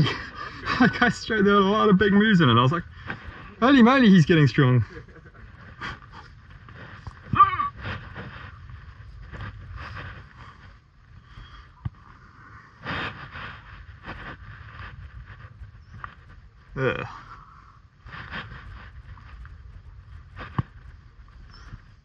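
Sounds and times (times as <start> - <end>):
short voiced sound: 7.3 - 7.8.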